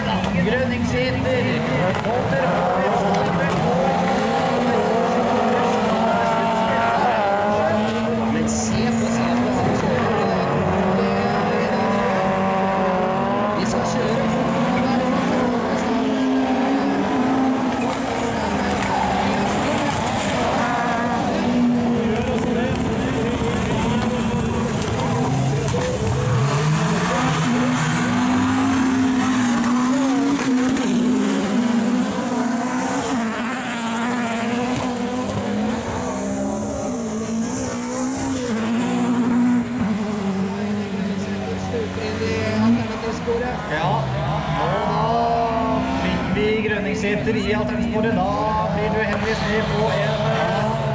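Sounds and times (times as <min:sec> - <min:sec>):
racing car engines revving: 0:00.0 - 0:50.9.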